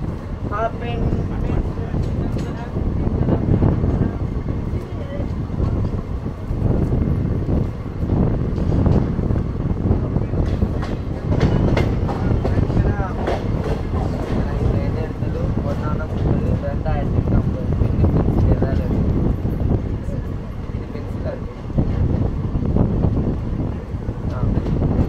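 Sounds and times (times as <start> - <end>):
train wheels clattering on rails: 0.0 - 22.4, 23.0 - 25.0.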